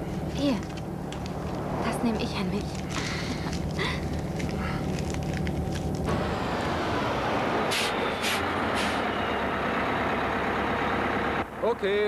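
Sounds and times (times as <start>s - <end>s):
bus engine running: 0.0s - 12.0s
bus rushing on road: 0.0s - 12.0s
air brake hisses: 7.7s - 9.1s.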